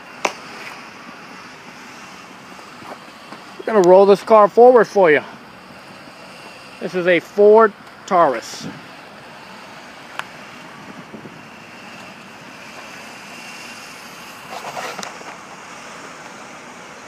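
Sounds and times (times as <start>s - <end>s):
car engine running: 0.0s - 17.0s.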